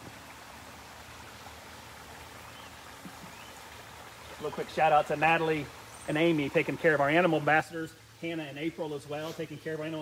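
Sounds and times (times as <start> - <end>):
waterfall splashing into pond: 0.0 - 10.0.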